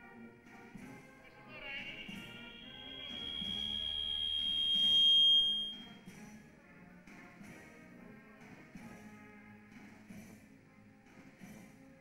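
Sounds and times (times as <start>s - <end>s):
loud high steady tone: 1.3s - 5.9s.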